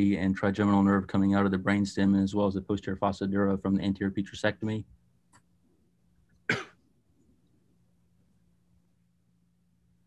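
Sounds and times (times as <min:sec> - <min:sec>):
faint background hum: 0:00.0 - 0:10.0
person coughing: 0:06.5 - 0:06.8.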